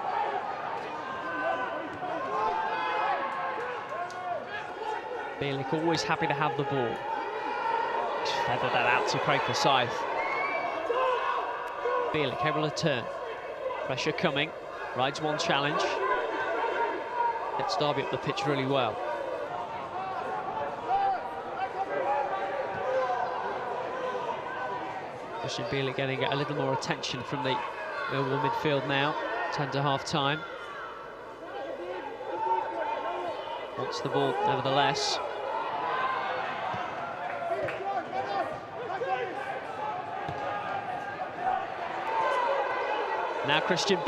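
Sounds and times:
players shouting: 0:00.0 - 0:44.0.

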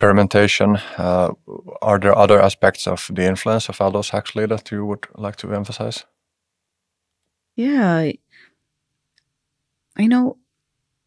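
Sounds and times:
person speaking: 0:00.0 - 0:06.0.

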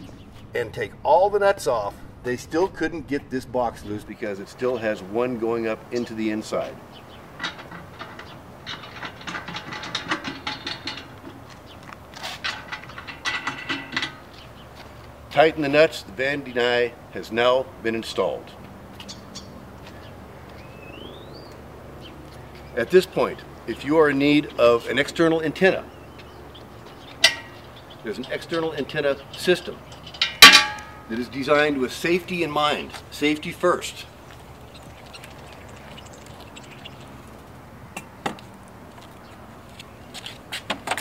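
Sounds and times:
faint outdoor background noise: 0:00.0 - 0:41.0.

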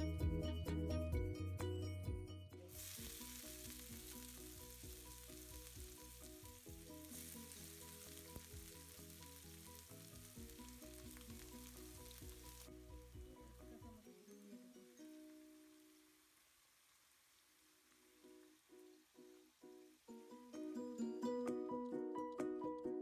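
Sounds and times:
soft background music: 0:00.0 - 0:16.2, 0:18.2 - 0:23.0
onion sizzling in hot oil: 0:02.7 - 0:14.1.

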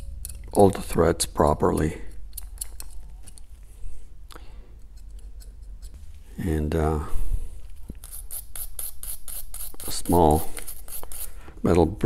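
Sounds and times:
wire brush scrubbing metal: 0:08.0 - 0:11.4.

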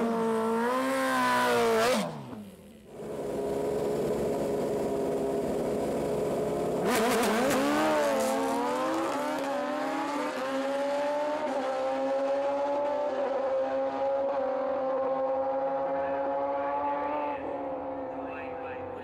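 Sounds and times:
motorcycle engines revving and accelerating: 0:00.0 - 0:19.0.

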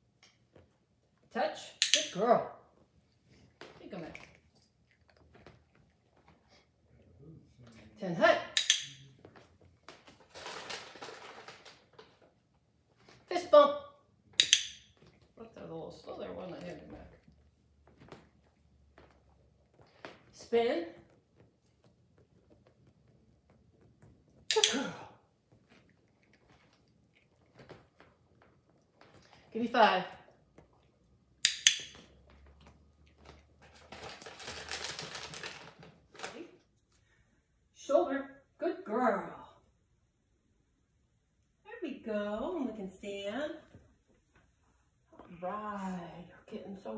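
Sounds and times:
training clicker snapping: 0:01.8 - 0:02.2, 0:08.5 - 0:09.0, 0:14.4 - 0:14.9, 0:24.5 - 0:24.8, 0:31.4 - 0:32.0
cat chewing crunchy treat: 0:25.5 - 0:29.4
crackly ticking and rustling: 0:32.3 - 0:36.5.

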